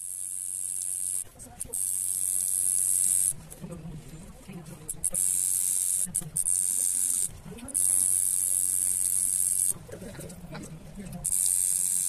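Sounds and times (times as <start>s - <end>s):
tattoo machine running: 0.0s - 3.6s, 4.8s - 10.6s, 11.2s - 12.0s.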